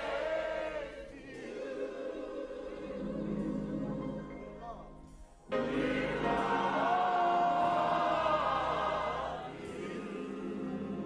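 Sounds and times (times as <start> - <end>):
gospel choir singing a chord: 0.0 - 11.0
quiet music: 0.0 - 11.0.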